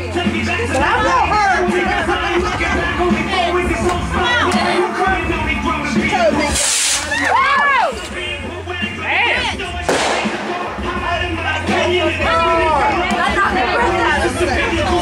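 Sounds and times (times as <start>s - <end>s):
music: 0.0s - 15.0s
people's voices: 0.0s - 15.0s
firework hiss: 6.5s - 7.3s
firework bang: 9.9s - 11.0s.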